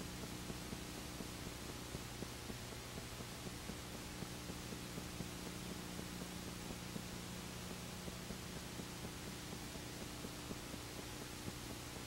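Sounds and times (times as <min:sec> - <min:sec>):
faint irregular ticks: 0:00.0 - 0:12.0
low electrical hum: 0:00.0 - 0:12.0
tape hiss: 0:00.0 - 0:12.0.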